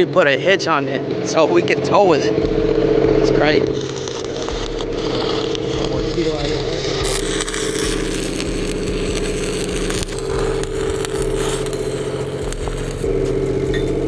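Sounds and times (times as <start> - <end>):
engine humming: 0.0 - 14.0
welding arc crackling: 2.3 - 14.0.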